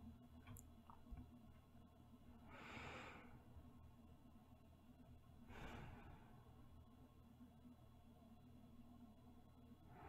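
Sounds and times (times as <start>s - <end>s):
woman breathing softly: 2.4s - 3.5s, 5.4s - 6.6s.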